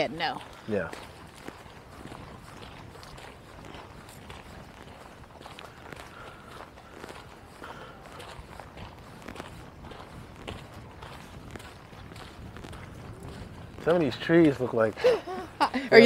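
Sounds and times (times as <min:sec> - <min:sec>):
footsteps on woodland trail: 0:00.0 - 0:15.9.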